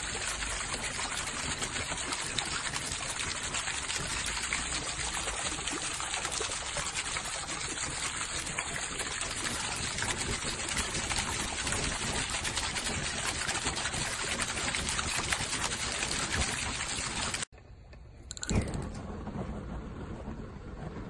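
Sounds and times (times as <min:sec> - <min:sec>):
water pouring into basin: 0:00.0 - 0:17.5.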